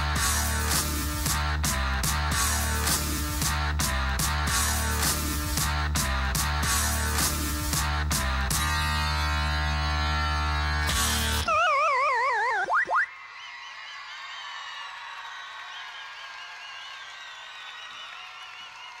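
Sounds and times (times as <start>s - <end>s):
loud rock music: 0.0s - 11.5s
arcade game over sound effect: 11.4s - 13.1s
audience cheering and whistling: 11.4s - 19.0s.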